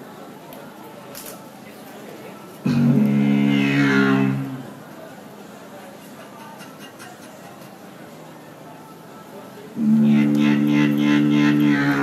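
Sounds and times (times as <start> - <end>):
beatboxed bass drone: 2.6 - 4.7, 9.8 - 12.0.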